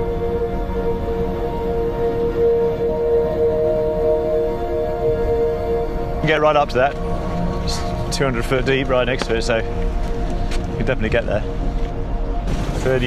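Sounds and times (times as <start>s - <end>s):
ambient music with held notes: 0.0s - 13.0s
low rumble: 0.0s - 13.0s.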